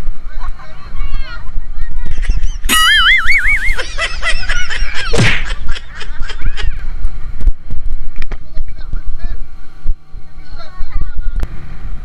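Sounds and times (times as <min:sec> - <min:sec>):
wind and boat rumble: 0:00.0 - 0:12.0
people shrieking and whooping: 0:02.2 - 0:05.5.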